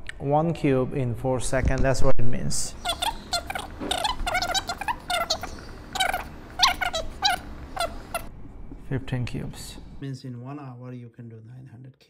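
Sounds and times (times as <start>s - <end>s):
marker squeaking on whiteboard: 2.7s - 8.3s.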